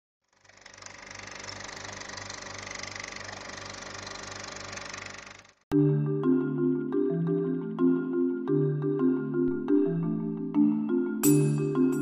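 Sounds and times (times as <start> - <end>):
marimba-like mallet music: 5.7 - 12.0.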